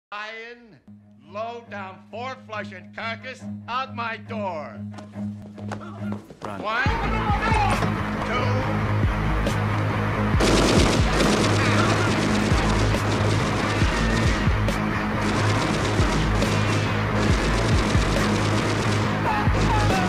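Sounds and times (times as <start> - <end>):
loud bass-heavy music: 6.9 - 20.0
machine-gun fire: 10.4 - 20.0.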